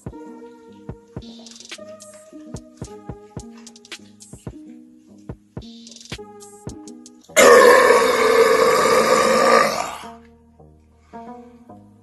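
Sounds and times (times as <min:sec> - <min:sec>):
quiet background music: 0:00.0 - 0:12.0
man belching loudly: 0:07.4 - 0:10.1.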